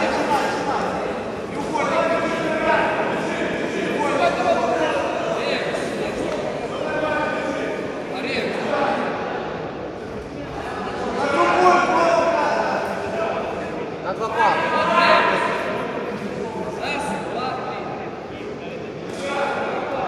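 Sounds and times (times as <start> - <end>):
people talking and calling out: 0.0 - 20.0.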